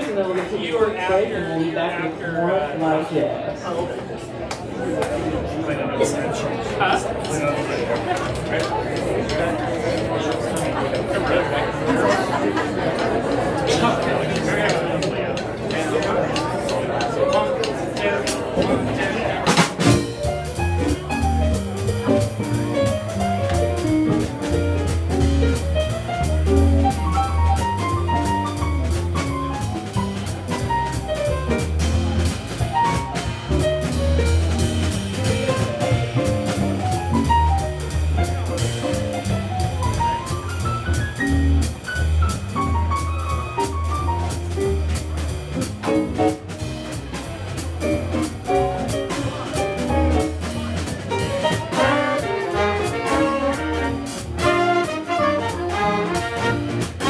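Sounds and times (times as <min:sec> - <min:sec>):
audience chatter: 0:00.0 - 0:57.0
jazz big band playing blues: 0:06.0 - 0:57.0
walking bass line: 0:18.4 - 0:57.0
drummer's cymbal beat: 0:19.4 - 0:57.0.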